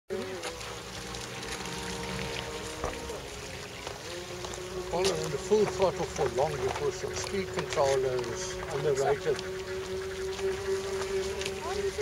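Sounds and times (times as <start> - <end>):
model boat electric motor whining: 0.1 - 12.0.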